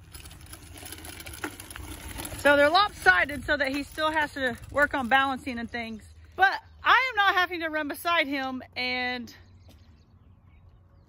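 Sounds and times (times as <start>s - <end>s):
tyres crunching on gravel: 0.0s - 7.0s.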